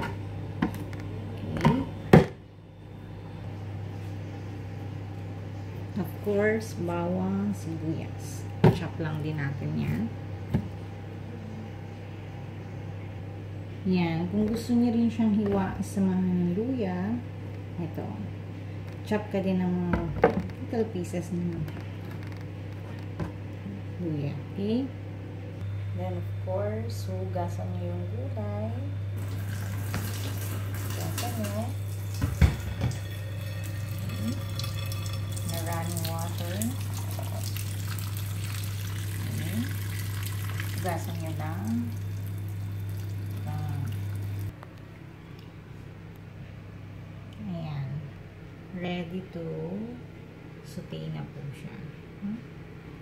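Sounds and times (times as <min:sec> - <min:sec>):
steady low hum: 0:00.0 - 0:53.0.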